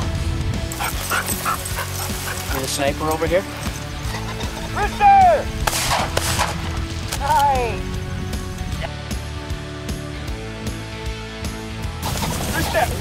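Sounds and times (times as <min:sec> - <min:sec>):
shotgun shots: 0:05.6 - 0:06.8.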